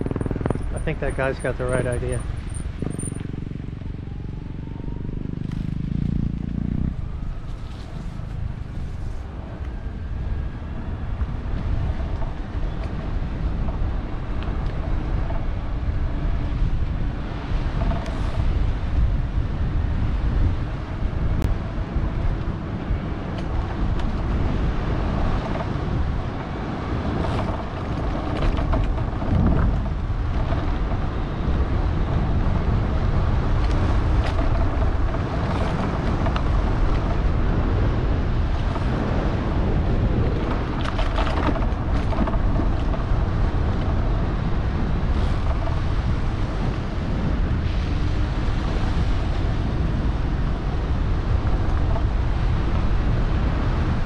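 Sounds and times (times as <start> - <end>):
wind rushing over microphone: 0.0 - 54.0.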